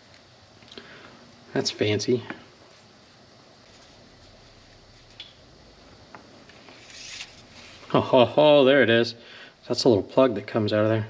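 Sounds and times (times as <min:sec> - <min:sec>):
rubbing scrape: 0:06.5 - 0:07.9.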